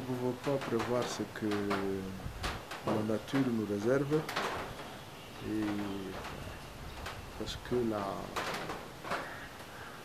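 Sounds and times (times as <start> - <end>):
man speaking: 0.0 - 2.2, 2.9 - 4.3, 5.4 - 6.3, 7.4 - 8.4
background hiss: 0.0 - 10.0.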